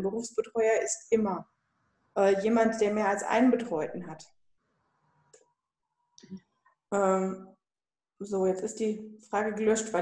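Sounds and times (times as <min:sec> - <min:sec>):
woman speaking: 0:00.0 - 0:01.5, 0:02.2 - 0:04.3, 0:06.9 - 0:07.6, 0:08.2 - 0:10.0.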